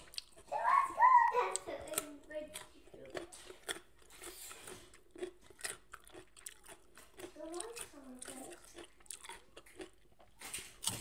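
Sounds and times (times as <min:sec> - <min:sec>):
person chewing crunchy vegetable: 0:00.0 - 0:00.8, 0:01.4 - 0:11.0.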